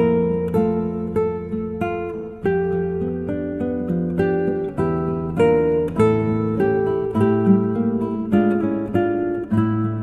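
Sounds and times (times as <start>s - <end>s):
acoustic guitar plucking: 0.0s - 10.0s.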